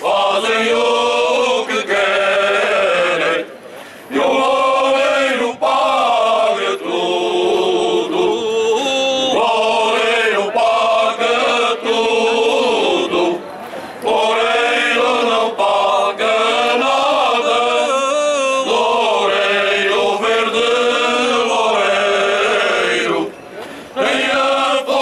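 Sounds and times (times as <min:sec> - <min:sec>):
men's choir singing unaccompanied: 0:00.0 - 0:25.0.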